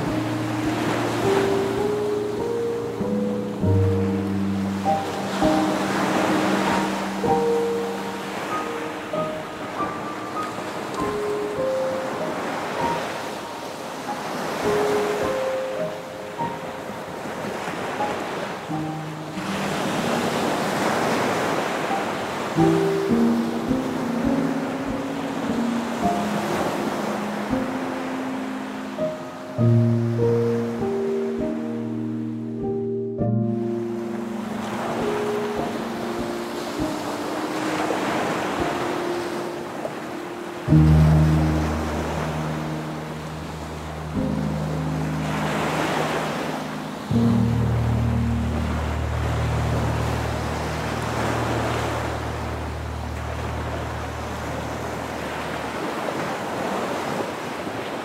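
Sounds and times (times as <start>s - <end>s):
soft instrumental music: 0.0s - 57.2s
ocean waves washing: 0.0s - 58.0s.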